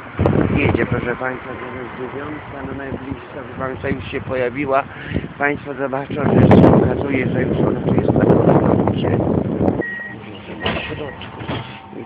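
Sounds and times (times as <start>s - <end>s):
tram running noise: 7.2s - 12.0s
high electronic beep: 9.8s - 11.3s.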